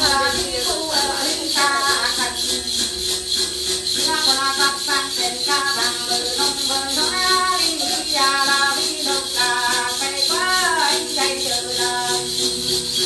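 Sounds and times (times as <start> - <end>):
shaken bells jingling: 0.0 - 13.0
woman singing a ritual chant: 0.0 - 13.0.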